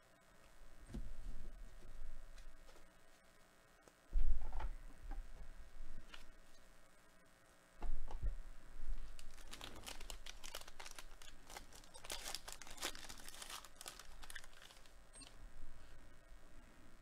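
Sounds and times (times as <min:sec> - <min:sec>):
plastic wrapper tearing and crinkling: 0:09.0 - 0:15.0.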